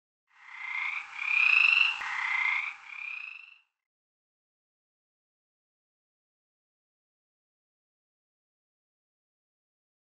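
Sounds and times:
frog croaking: 0:00.3 - 0:03.8.

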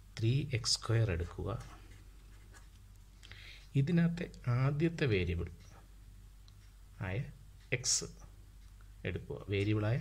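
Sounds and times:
marker scratching on paper: 0:01.6 - 0:02.7.

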